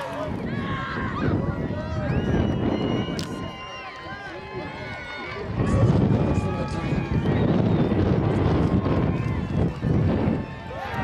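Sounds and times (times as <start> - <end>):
people shouting: 0.0 - 7.4, 8.2 - 11.0.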